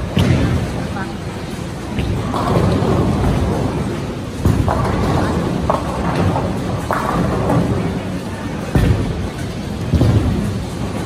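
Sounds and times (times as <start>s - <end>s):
bowling balls rolling on lanes: 0.0s - 11.0s
bowling pins clattering: 1.7s - 11.0s.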